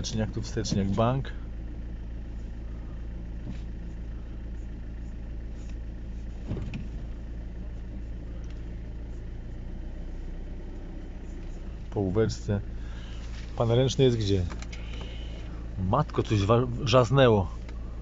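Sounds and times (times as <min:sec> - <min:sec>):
diesel engine idling: 0:00.0 - 0:18.0.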